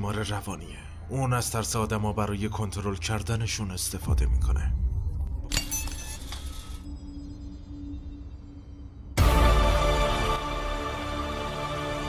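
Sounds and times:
low musical drone: 0.0 - 12.0.

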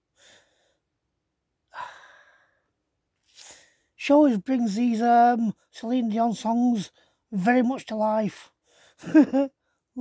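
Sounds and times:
man sighing: 1.7 - 2.6.

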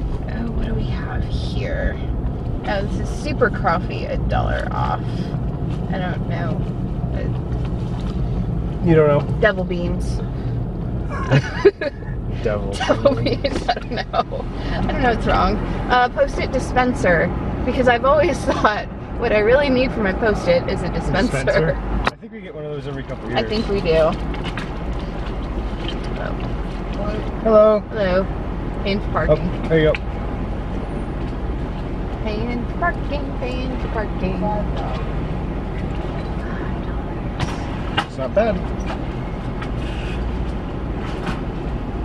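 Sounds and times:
car cabin rumble: 0.0 - 42.0.

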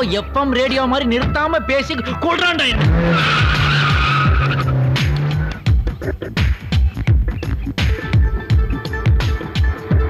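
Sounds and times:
car tyres squealing: 2.7 - 5.6
car engine running: 2.8 - 6.3.

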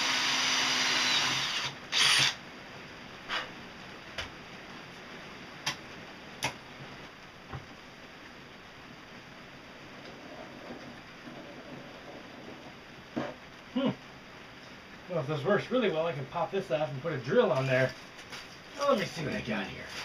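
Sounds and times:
steady low hiss: 0.0 - 20.0.

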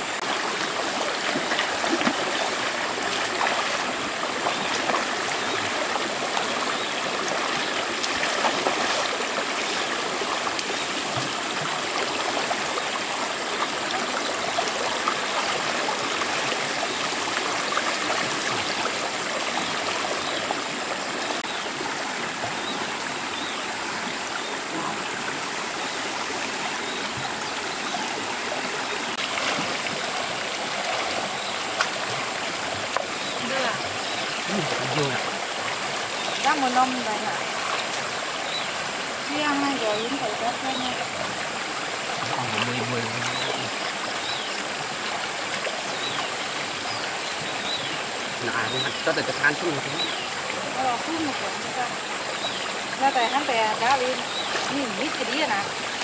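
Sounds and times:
people wading splashes: 0.0 - 46.8, 47.4 - 56.0
stream running over rocks: 0.0 - 56.0.

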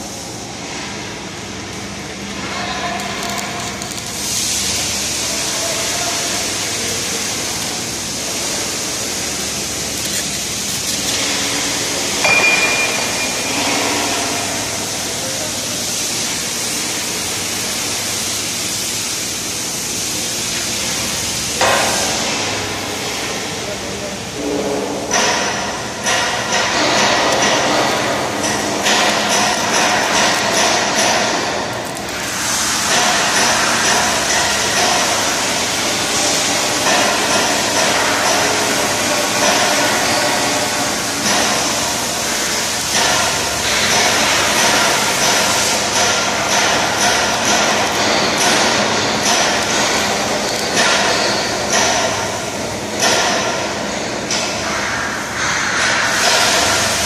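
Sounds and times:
workshop noise hiss: 0.0 - 57.0.

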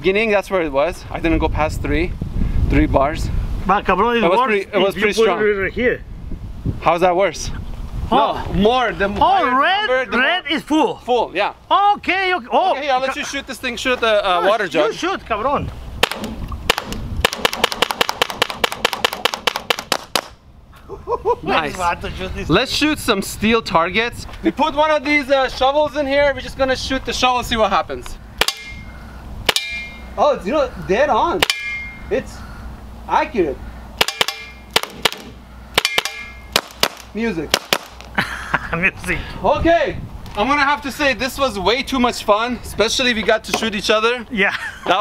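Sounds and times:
air launcher firing shots: 16.0 - 20.4, 28.4 - 30.1, 34.0 - 38.0
balls ringing on steel shovel: 29.5 - 30.2, 31.4 - 32.1, 35.8 - 36.5.

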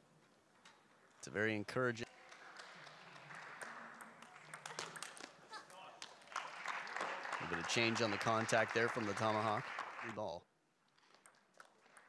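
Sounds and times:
applause: 2.0 - 10.4, 11.1 - 12.0.

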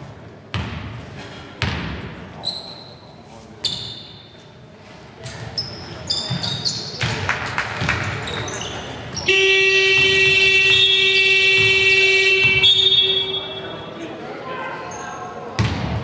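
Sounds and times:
basketball bouncing: 0.5 - 1.0, 1.6 - 2.1, 6.3 - 8.5, 9.1 - 13.3, 15.6 - 16.0
shoes squeaking on wooden court: 2.4 - 13.9, 14.9 - 15.8
scoreboard horn blast: 9.3 - 13.8.

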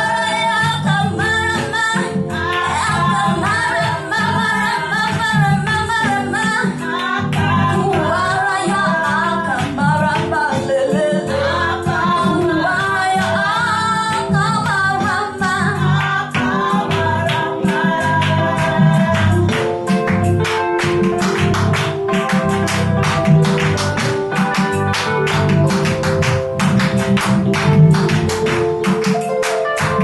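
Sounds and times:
woman singing gospel song: 0.0 - 20.1
live band with keyboard: 0.0 - 30.0.

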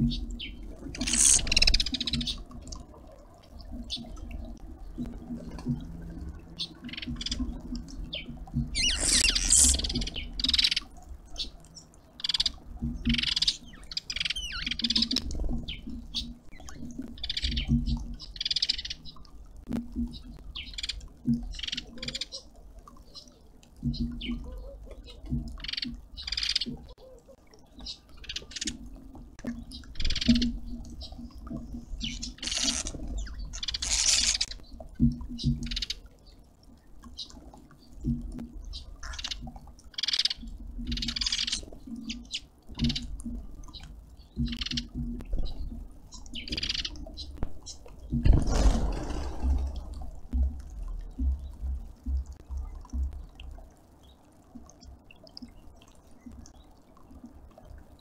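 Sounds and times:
small birds chirping: 0.0 - 2.6, 6.5 - 19.3, 29.5 - 36.4, 37.0 - 48.2.

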